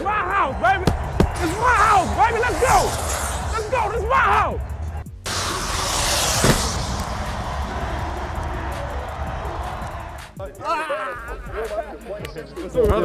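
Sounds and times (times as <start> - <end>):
men talking: 0.0 - 4.7, 10.3 - 13.0
stadium crowd cheering: 0.0 - 10.4
music: 0.0 - 13.0.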